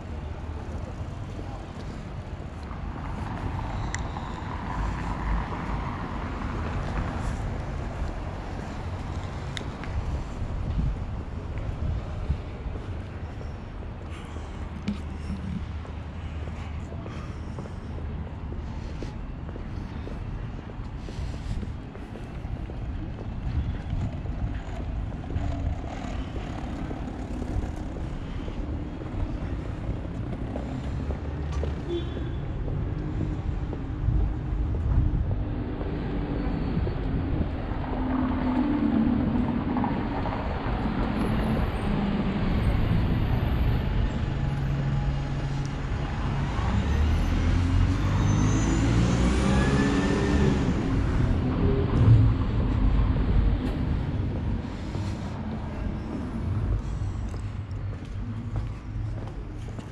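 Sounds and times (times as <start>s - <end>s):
steady low traffic rumble: 0.0s - 59.9s
vehicle engines passing: 0.0s - 59.9s.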